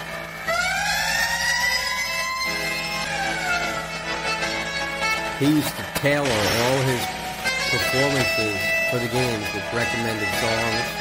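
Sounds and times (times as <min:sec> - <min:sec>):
siren-like wail: 0:00.0 - 0:04.8
held organ tones: 0:00.0 - 0:11.0.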